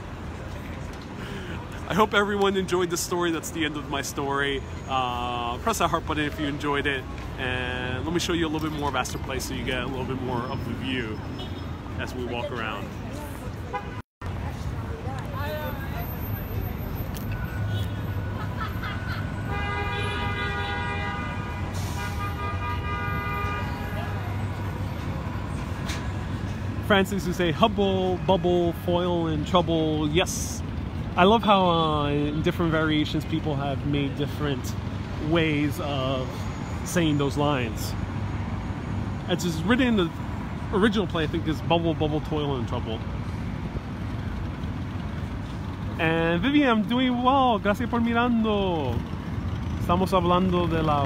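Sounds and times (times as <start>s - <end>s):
street traffic rumble: 0.0s - 51.0s
vehicle horn blasts: 19.4s - 24.3s.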